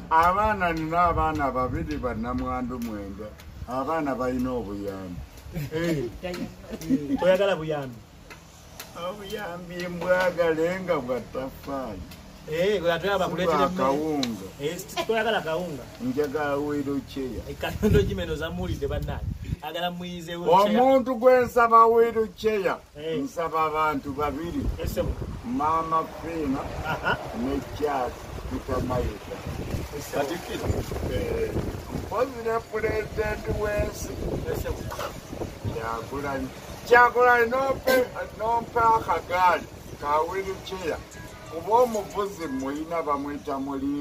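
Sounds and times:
man speaking: 0.0s - 6.2s, 6.8s - 8.1s, 8.9s - 44.0s
man talking: 0.0s - 8.1s, 8.8s - 44.0s
wind rumble on microphone: 0.2s - 4.0s, 17.4s - 19.7s, 23.9s - 41.9s.

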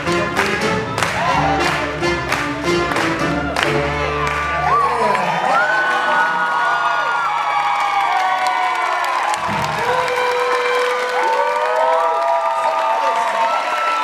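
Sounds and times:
live swing band: 0.0s - 4.8s
crowd cheering and whooping: 0.9s - 2.1s, 2.9s - 14.0s.

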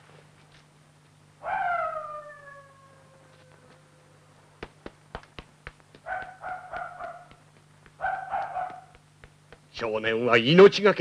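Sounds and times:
dog howling: 1.4s - 4.2s, 6.1s - 7.3s, 8.0s - 9.0s.

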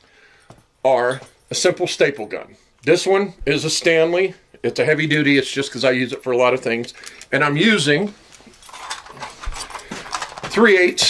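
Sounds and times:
small objects clicking and rattling: 8.4s - 10.6s.

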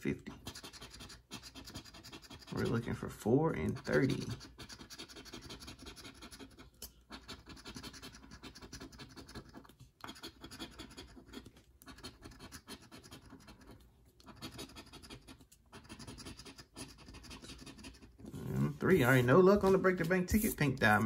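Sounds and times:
coin scratching lottery ticket: 0.3s - 19.2s.

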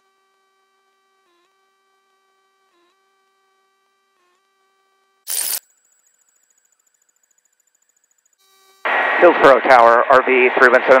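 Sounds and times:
faint steady hum: 0.0s - 11.0s
headset static burst: 5.3s - 5.6s, 8.8s - 11.0s
man speaking on radio: 8.9s - 11.0s.

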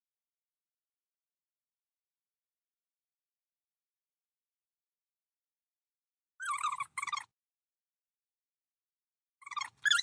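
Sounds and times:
high-pitched cartoon creature voices: 9.4s - 10.0s.

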